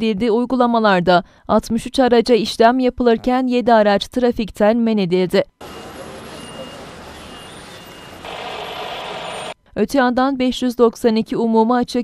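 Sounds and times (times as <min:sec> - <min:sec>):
street traffic noise: 0:05.6 - 0:09.6.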